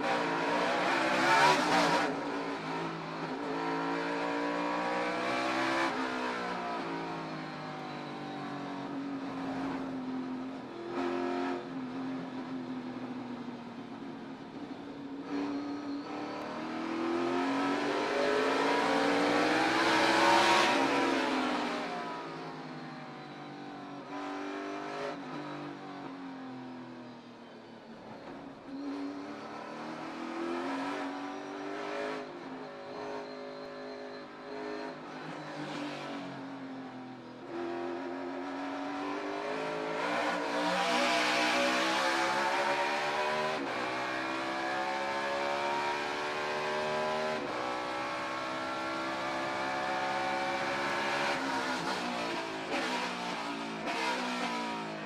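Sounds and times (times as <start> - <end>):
race car engines revving: 0.0 - 7.3, 14.6 - 22.8, 28.0 - 55.0.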